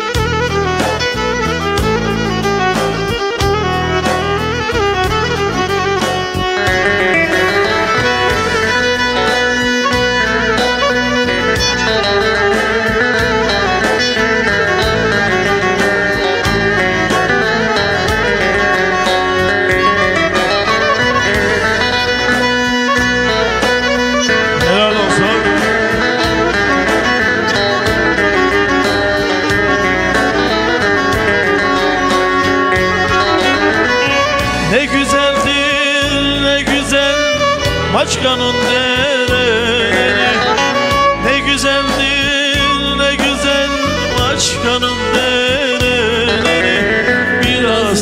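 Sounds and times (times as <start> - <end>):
bowed fiddle playing folk tune: 0.0 - 48.0.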